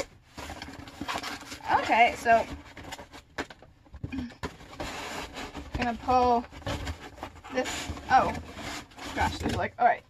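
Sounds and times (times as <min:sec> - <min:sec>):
cardboard sliding scrape: 0:04.6 - 0:09.7.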